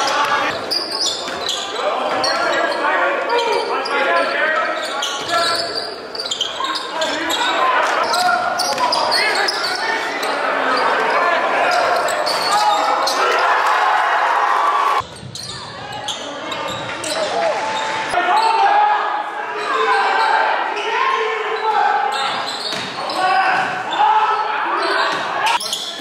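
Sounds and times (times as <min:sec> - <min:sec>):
voices echoing in gym hall: 0:00.0 - 0:26.0.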